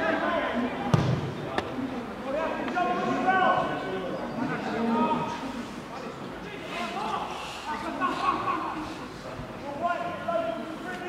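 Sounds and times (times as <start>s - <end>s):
men shouting outdoors: 2.2s - 4.0s.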